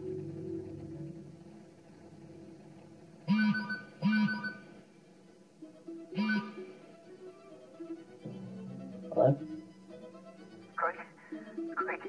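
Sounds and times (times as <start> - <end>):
faint background music: 0.0 - 12.0
phone ringing: 3.3 - 4.8.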